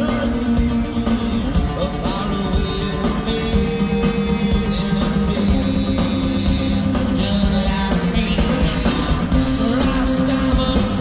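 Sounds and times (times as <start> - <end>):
acoustic guitar: 0.0 - 11.0
rock band playing live: 0.0 - 11.0.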